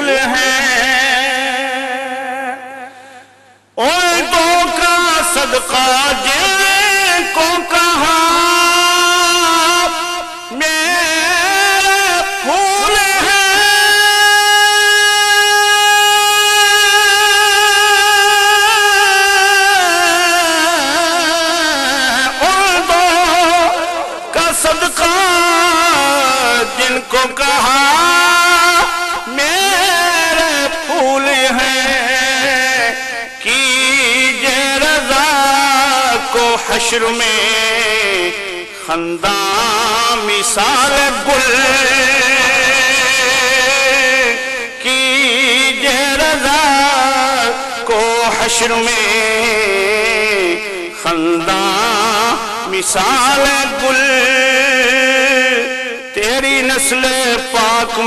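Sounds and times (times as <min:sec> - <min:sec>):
man singing long high note: 0:00.0 - 0:58.0.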